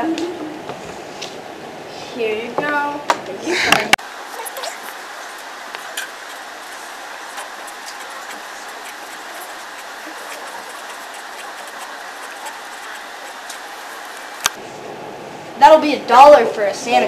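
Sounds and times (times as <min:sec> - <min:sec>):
background hiss: 0:00.0 - 0:15.8
marker scratching on paper: 0:04.4 - 0:14.6.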